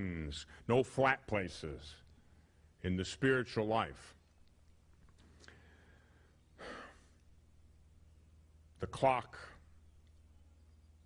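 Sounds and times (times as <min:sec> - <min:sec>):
faint low hum: 0:00.0 - 0:11.0
man's breath puff: 0:06.6 - 0:07.2.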